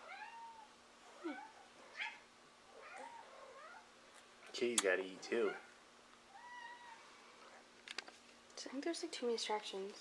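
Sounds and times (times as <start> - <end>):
cat meowing faintly: 6.3 - 7.1.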